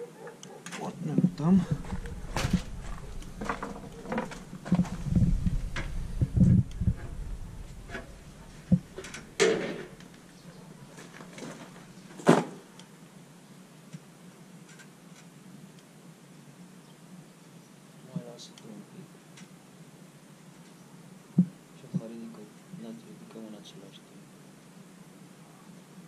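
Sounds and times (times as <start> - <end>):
shuffling and handling rumbles: 0.7 - 12.4.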